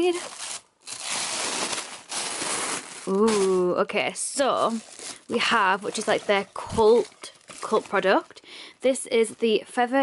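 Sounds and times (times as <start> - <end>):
person speaking: 0.0 - 0.4, 3.0 - 10.0
paper packing crinkling and rustling: 0.0 - 8.2.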